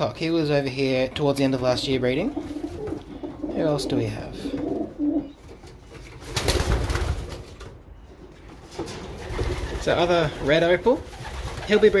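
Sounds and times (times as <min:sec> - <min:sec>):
pigeons cooing: 0:02.2 - 0:05.4.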